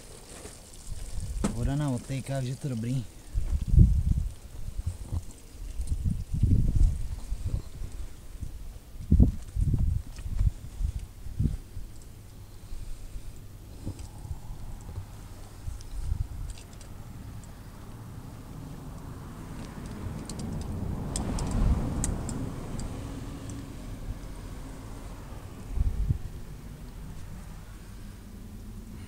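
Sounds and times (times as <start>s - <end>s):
garden hose clicks and rustles: 0.0s - 8.2s, 13.4s - 17.9s, 18.9s - 25.7s
low steady rumble: 0.0s - 29.0s
vehicle passing: 14.0s - 29.0s.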